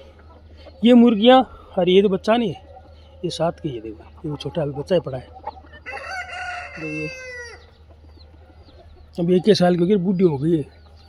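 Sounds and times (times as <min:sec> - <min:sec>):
rooster crowing: 0:05.8 - 0:07.7.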